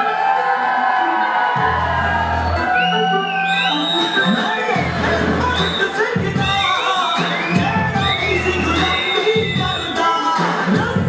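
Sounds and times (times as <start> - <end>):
audience cheering and shouting: 0.0 - 11.0
loud music with gliding melody: 0.0 - 11.0.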